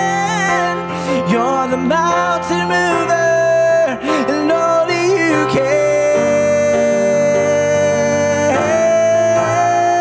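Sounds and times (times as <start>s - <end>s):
grand piano chords: 0.0s - 10.0s
man singing long held notes: 0.0s - 10.0s.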